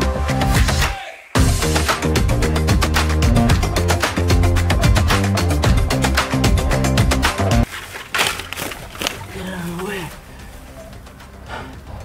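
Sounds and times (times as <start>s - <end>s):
background music with quick beat: 0.0s - 7.8s
dry weeds being pulled: 7.6s - 11.2s.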